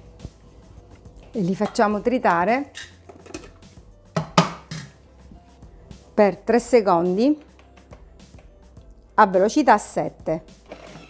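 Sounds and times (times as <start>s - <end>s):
plastic lid knocking on steel bowl: 4.2s - 5.0s.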